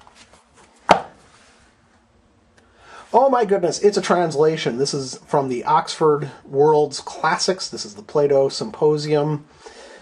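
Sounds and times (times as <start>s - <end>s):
book knocking on hard surface: 0.9s - 1.2s.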